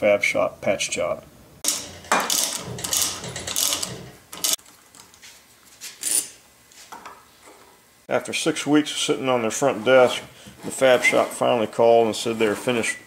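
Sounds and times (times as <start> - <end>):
metal scraping on wood: 1.6 - 4.6, 9.3 - 13.0.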